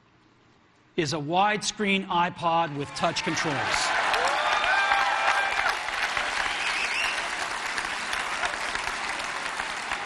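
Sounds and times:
audience applauding: 2.7 - 10.0
whistles from crowd: 6.4 - 7.3.

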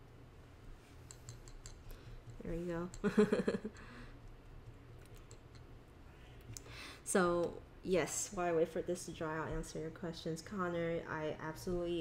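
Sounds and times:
soft intake of breath: 6.2 - 7.1.

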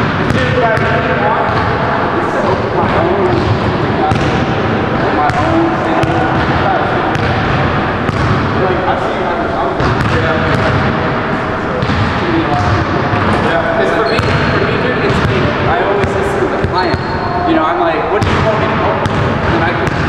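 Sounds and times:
indistinct voices: 0.6 - 19.8.

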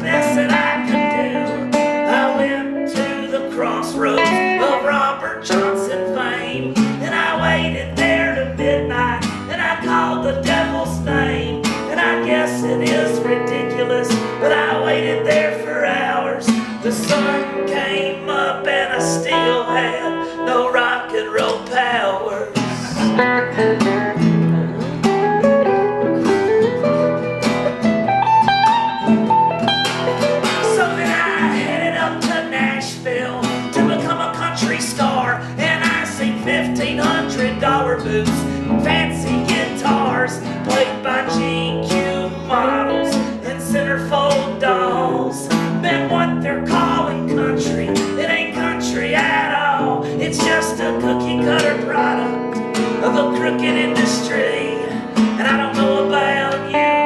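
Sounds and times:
acoustic guitar strummed: 0.0 - 57.0
electric guitar lead lines: 0.0 - 57.0.

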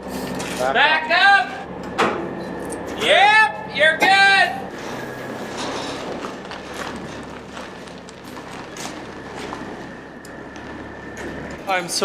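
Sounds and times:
truck engine running: 0.0 - 12.0
trailer wheels clicking: 2.6 - 12.0
person shouting: 3.0 - 4.7.

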